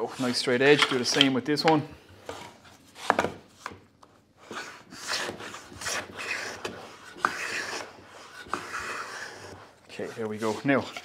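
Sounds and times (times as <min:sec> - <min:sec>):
plane scraping shavings off wood: 0:04.6 - 0:11.0.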